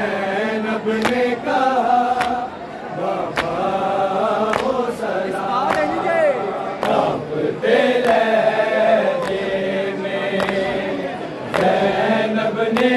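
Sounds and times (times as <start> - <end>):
men chanting a lament: 0.0 - 12.9.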